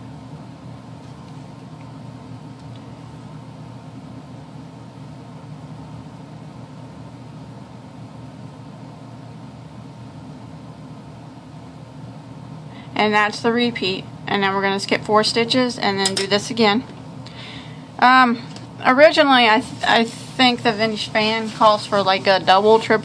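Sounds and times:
low background hum: 0.0 - 23.0.

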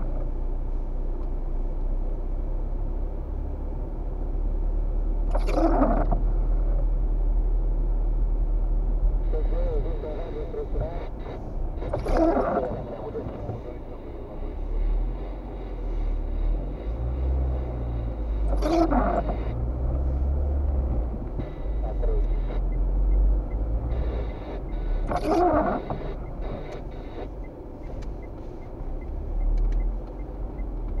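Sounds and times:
car cabin rumble: 0.0 - 31.0.

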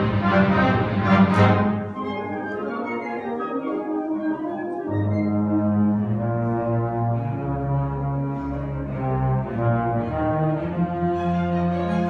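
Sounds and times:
strings: 0.0 - 12.0
symphony orchestra playing: 0.0 - 12.0.

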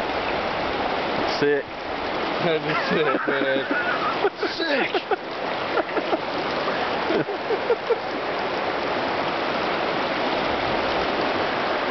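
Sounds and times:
stream rushing over rocks: 0.0 - 11.9.

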